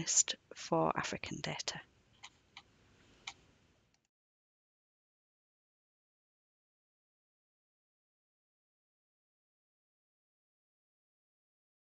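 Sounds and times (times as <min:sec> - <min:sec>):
faint room hiss: 0:01.3 - 0:04.0.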